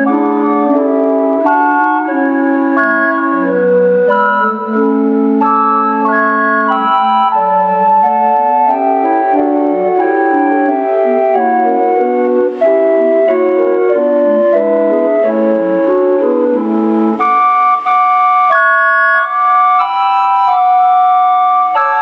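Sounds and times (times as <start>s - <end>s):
calliope playing a tune: 0.0s - 22.0s.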